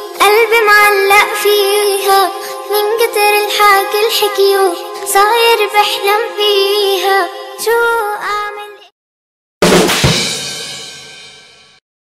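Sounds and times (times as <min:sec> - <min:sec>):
child singing a cappella: 0:00.0 - 0:08.9.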